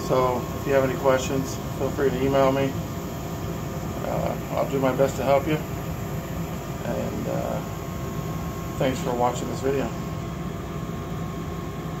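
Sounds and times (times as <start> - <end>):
gas furnace humming: 0.0 - 12.0.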